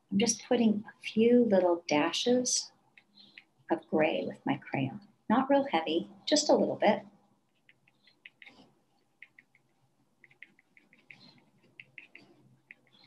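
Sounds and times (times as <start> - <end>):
crayon ticking on paper: 7.5 - 13.0.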